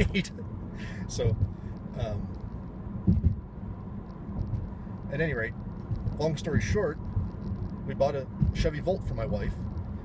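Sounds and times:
road and tyre rumble in car: 0.0 - 10.0
low bump: 3.0 - 3.4.

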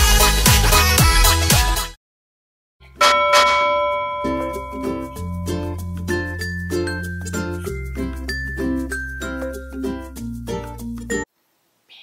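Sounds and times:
bell-like chime ringing: 3.0 - 9.2.

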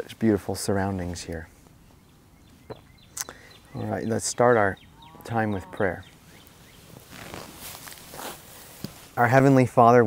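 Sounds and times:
clothing and grass rustling: 0.0 - 10.0.

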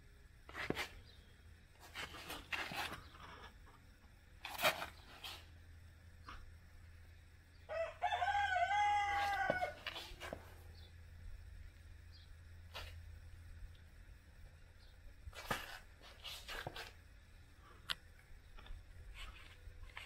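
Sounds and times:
rubber roll crackling on concrete: 0.5 - 1.1, 1.8 - 3.8, 4.4 - 5.5, 9.2 - 10.6, 15.2 - 17.0, 18.5 - 20.0
rooster crowing: 7.7 - 10.2.

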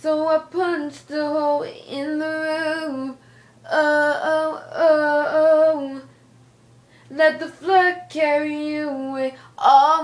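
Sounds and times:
woman singing unaccompanied: 0.0 - 6.1, 7.1 - 10.0.

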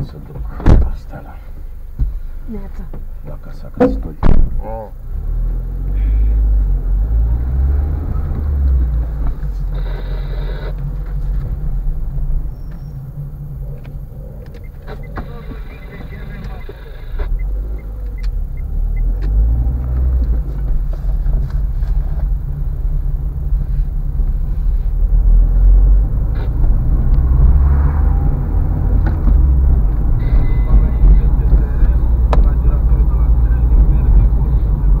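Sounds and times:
car engine rumble: 0.0 - 35.0
tyres rolling on road: 0.0 - 35.0.

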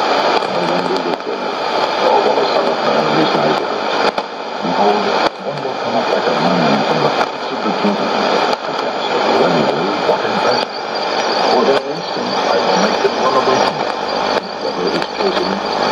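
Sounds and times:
person reading over radio: 0.0 - 15.9
radio static and hiss: 0.0 - 15.9.

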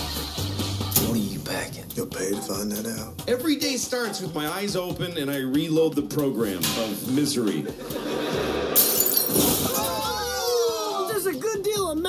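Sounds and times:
audience laughing: 7.8 - 8.8
loud shattering crash: 8.8 - 9.9.

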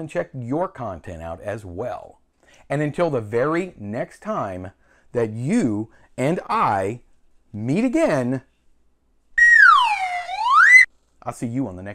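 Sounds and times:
whistle-like sliding tone: 9.4 - 10.9.

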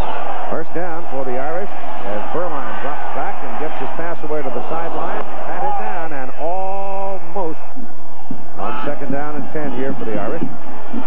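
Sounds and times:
murmur of stadium crowd: 0.0 - 11.0
man commentating: 0.5 - 7.7, 8.6 - 10.6.

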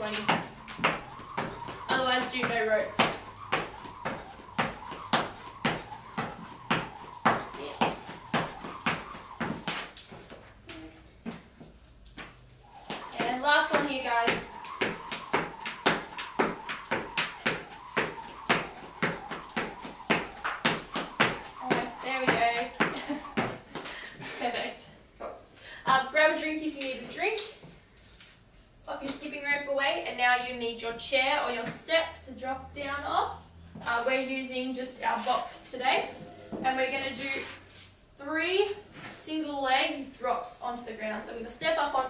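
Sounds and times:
skipping rope slapping floor: 0.0 - 24.0.

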